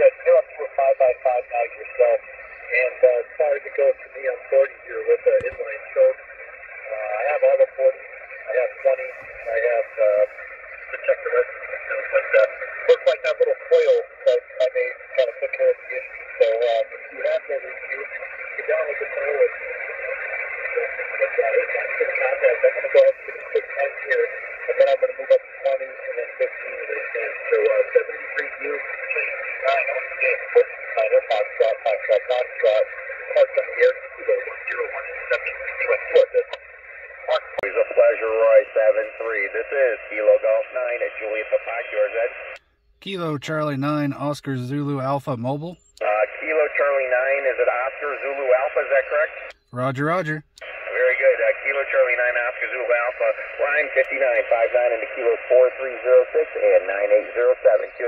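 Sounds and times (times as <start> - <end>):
radio operators talking: 0.0 - 58.0
static clicks: 5.3 - 43.1, 50.4 - 57.8.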